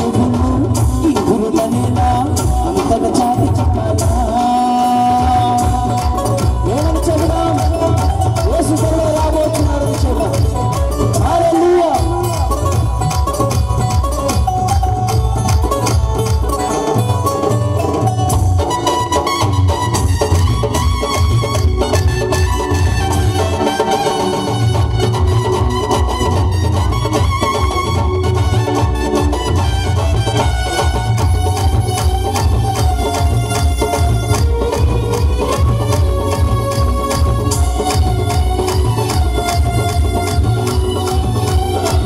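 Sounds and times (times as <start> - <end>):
tabla and steady beat: 0.0 - 42.0.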